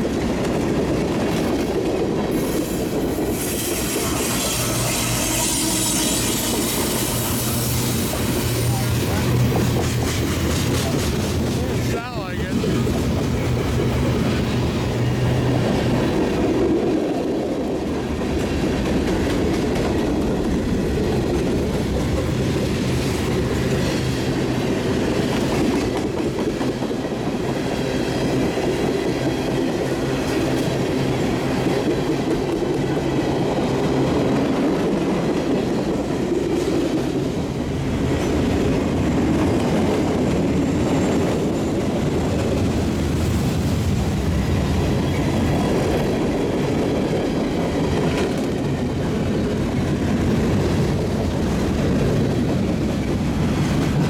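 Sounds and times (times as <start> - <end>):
freight train wheels rumbling: 0.0 - 54.0.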